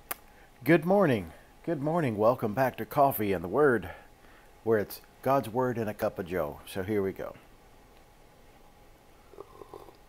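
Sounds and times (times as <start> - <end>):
person gulping coffee: 9.2 - 10.0.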